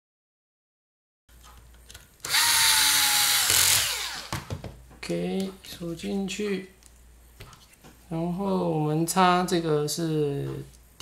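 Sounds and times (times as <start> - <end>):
electric screwdriver whirring: 2.2 - 4.5.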